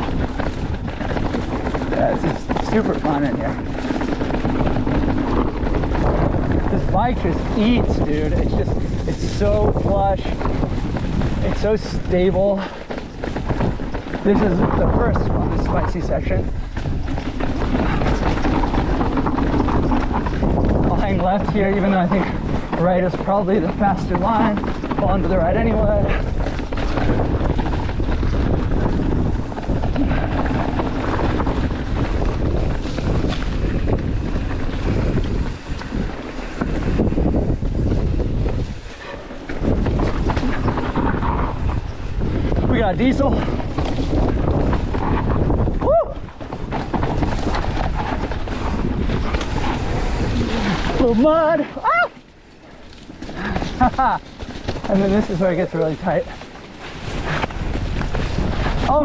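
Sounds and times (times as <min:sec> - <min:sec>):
bike tyres rolling on rough dirt: 0:00.0 - 0:59.0
wind buffeting microphone: 0:00.0 - 0:59.0.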